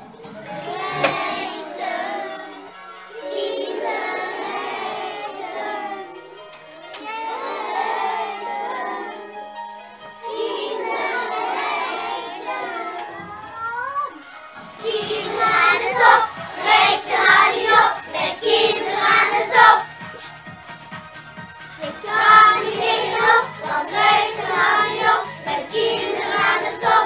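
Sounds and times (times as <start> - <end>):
children singing: 0.0 - 9.6, 10.2 - 20.3, 21.8 - 27.0
musical accompaniment: 0.0 - 27.0.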